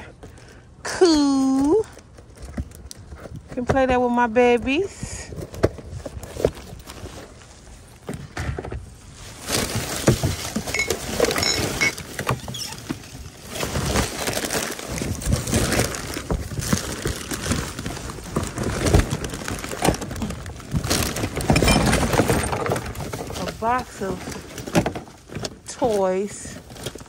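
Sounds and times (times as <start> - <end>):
plastic bags rustling: 1.4 - 27.0.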